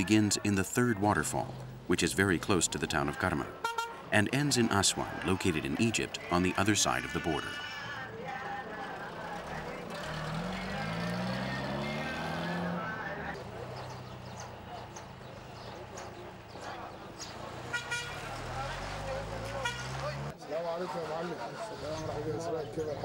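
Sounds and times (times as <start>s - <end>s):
people talking: 0.0s - 9.9s
second engine running: 8.3s - 20.3s
pickup truck engine revving: 8.8s - 15.7s.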